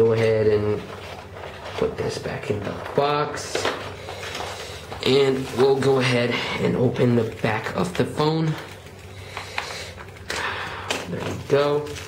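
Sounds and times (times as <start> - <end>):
plastic cover scraping: 0.0 - 12.0.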